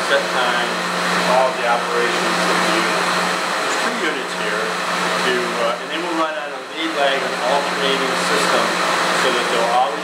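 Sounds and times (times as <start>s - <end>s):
air handler rushing air: 0.0s - 10.0s.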